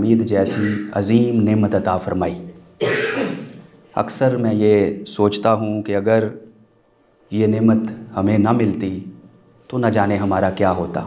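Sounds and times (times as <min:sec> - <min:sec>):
man speaking: 0:00.0 - 0:02.5, 0:04.0 - 0:06.5, 0:07.3 - 0:11.0
man clearing his throat: 0:00.4 - 0:01.0, 0:02.8 - 0:03.6.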